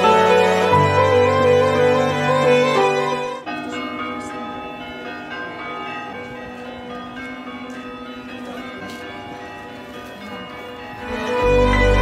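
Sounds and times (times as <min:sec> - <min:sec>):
church bells ringing: 0:00.0 - 0:12.0.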